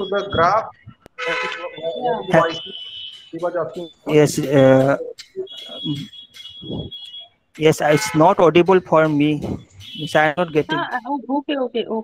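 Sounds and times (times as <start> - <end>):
high-pitched electronic tone: 1.7 - 11.0.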